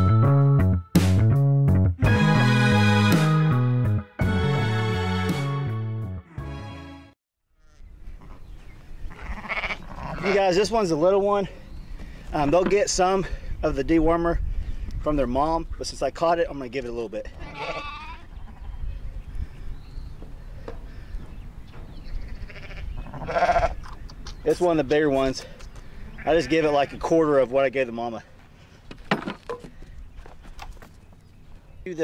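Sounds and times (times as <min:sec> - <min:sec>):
background music: 0:00.0 - 0:07.2
sheep bleating: 0:07.6 - 0:08.4, 0:09.1 - 0:10.4, 0:17.4 - 0:18.8, 0:22.2 - 0:23.8, 0:26.1 - 0:27.0
faint sheep pen noise: 0:07.6 - 0:11.5, 0:16.8 - 0:19.1, 0:20.1 - 0:28.5.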